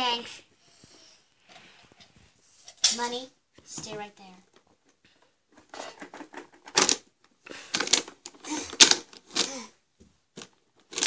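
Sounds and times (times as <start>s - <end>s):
plastic toy car rattling: 5.5s - 9.7s, 10.4s - 11.0s.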